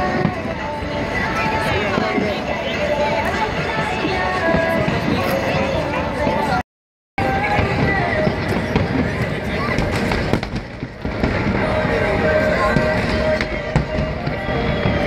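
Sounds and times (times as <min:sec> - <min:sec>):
crowd voices: 0:00.0 - 0:06.6, 0:07.2 - 0:15.0
fireworks popping and crackling: 0:00.0 - 0:06.6, 0:07.2 - 0:15.0.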